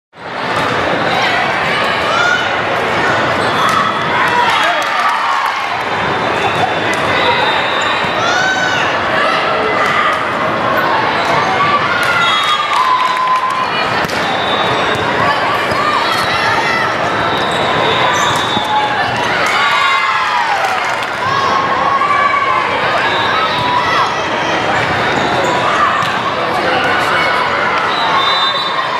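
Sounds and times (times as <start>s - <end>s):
crowd chatter: 0.2s - 28.9s
many overlapping voices: 0.2s - 28.9s
players shouting calls: 0.9s - 28.9s.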